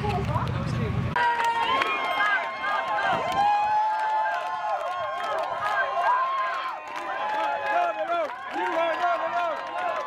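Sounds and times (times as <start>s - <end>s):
people talking: 0.0s - 2.3s.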